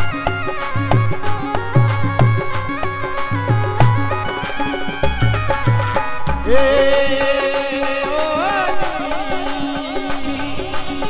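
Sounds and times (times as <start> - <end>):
hand drum beat: 0.0 - 11.0
reedy keyboard melody: 0.0 - 11.0.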